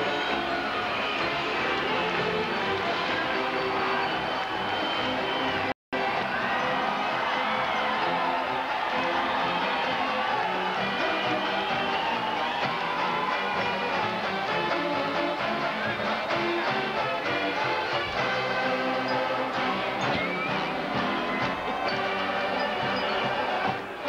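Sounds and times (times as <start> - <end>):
string band parade music: 0.0 - 24.0.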